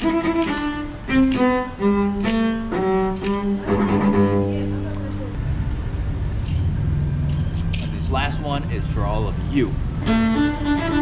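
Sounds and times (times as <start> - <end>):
solo cello melody: 0.0 - 5.4, 9.9 - 11.0
short bright jingles: 5.7 - 8.3.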